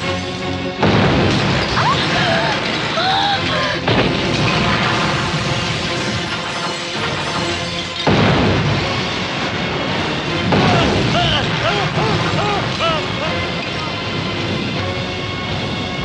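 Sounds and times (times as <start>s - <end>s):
dramatic music: 0.0s - 16.0s
explosion booms: 0.8s - 3.0s, 3.8s - 6.3s, 8.0s - 14.7s
sudden loud hits: 0.8s - 3.0s, 8.0s - 14.7s
people screaming: 1.7s - 3.9s, 10.6s - 14.0s.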